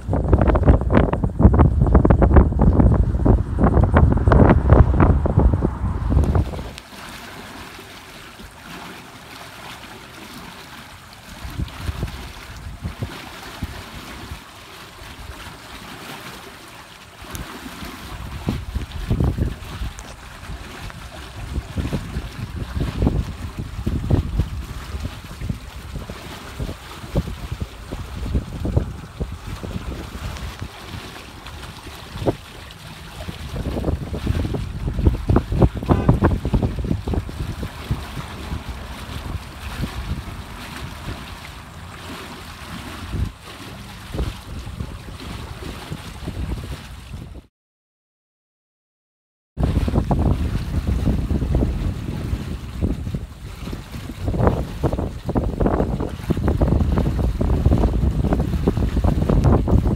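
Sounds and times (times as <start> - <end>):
wind buffeting microphone: 0.0 - 6.8, 11.2 - 15.9, 17.2 - 47.5, 49.6 - 59.9.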